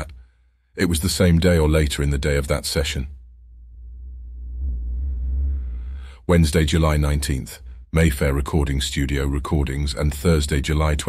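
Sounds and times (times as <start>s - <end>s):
faint hum: 1.9s - 11.0s
low rumbling drone: 3.1s - 11.0s.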